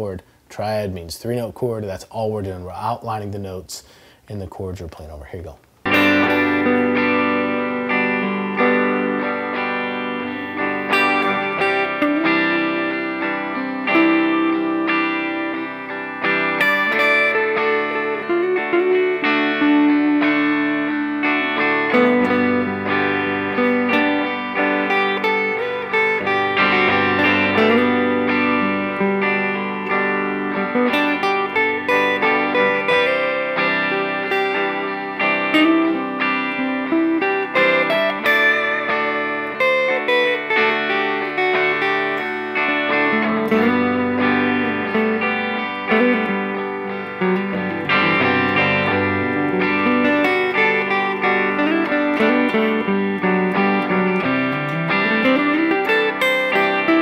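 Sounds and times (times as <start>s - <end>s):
backing jam track: 5.8s - 57.0s
electric guitar lead: 5.8s - 57.0s.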